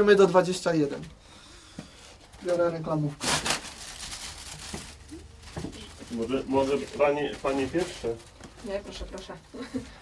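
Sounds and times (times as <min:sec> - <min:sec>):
plastic bag rustling: 0:02.2 - 0:09.4.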